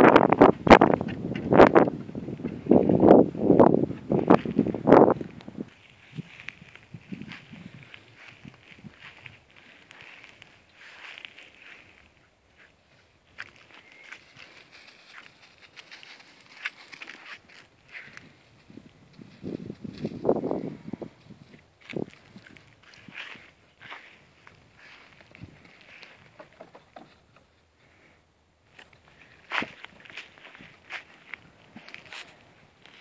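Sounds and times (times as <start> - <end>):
crunching footsteps: 0.0 - 27.1, 28.7 - 33.0.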